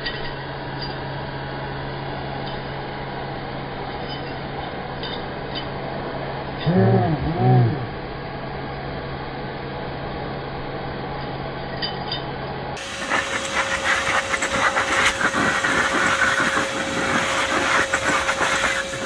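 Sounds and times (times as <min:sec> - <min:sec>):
steady whine: 0:00.0 - 0:19.0
handheld blower air rushing: 0:12.8 - 0:19.0.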